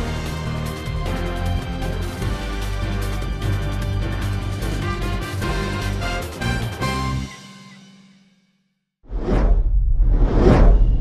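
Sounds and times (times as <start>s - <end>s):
cinematic whooshes: 9.0s - 11.0s
deep low rumble: 9.1s - 11.0s.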